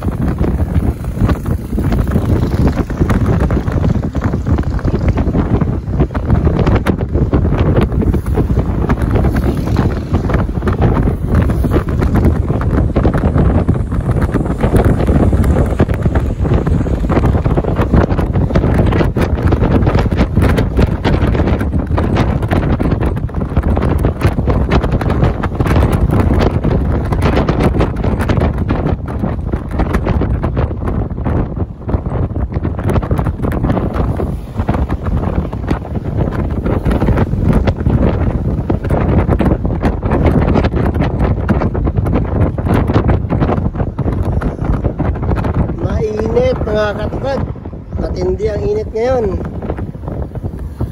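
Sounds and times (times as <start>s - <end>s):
vehicle road and engine noise: 0.0s - 50.9s
wind buffeting microphone: 0.0s - 50.9s.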